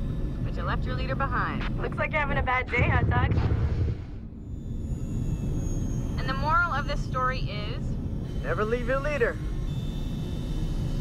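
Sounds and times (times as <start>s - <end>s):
starfighter engines rumbling: 0.0s - 11.0s.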